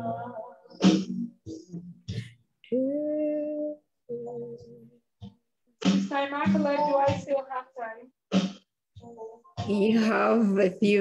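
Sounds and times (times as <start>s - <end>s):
person singing: 0.0s - 1.9s, 2.6s - 5.0s.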